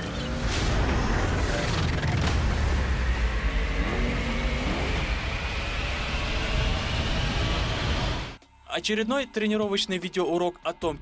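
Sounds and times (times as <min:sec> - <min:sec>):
thin rising whine: 0:00.0 - 0:08.4
tsunami wave rushing and rumbling: 0:00.1 - 0:08.4.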